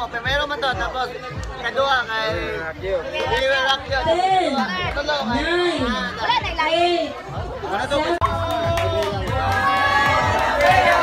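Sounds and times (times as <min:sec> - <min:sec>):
group chatter: 0:00.0 - 0:11.0.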